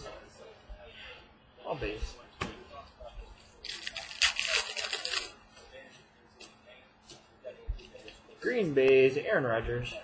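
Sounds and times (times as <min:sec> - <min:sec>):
cards scraping and rustling: 0:03.6 - 0:05.3.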